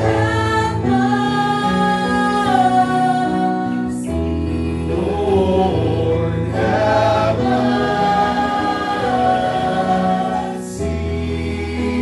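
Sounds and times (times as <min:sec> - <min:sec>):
church choir singing: 0:00.0 - 0:12.0
sustained instrumental chords: 0:02.7 - 0:12.0.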